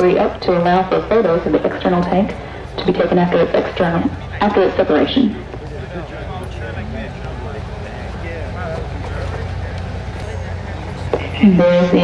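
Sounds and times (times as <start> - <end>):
low mechanical hum: 0.0 - 12.0
faint chatter of voices: 2.0 - 12.0.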